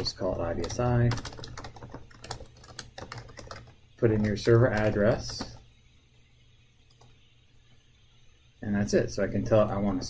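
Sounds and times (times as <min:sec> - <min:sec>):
computer keyboard typing: 0:00.0 - 0:05.6.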